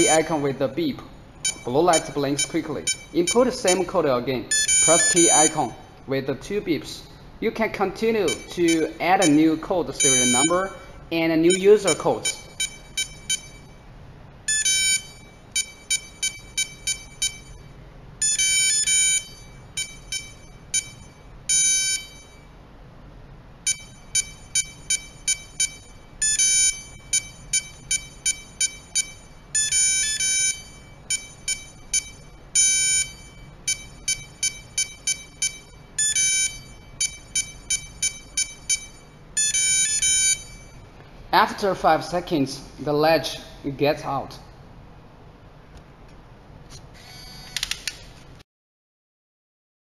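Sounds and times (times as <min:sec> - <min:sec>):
keypad lock beeping: 0:00.0 - 0:00.2, 0:01.4 - 0:03.9, 0:04.5 - 0:05.6, 0:08.3 - 0:09.4, 0:10.0 - 0:10.6, 0:11.5 - 0:13.7, 0:14.5 - 0:22.4, 0:23.7 - 0:40.8.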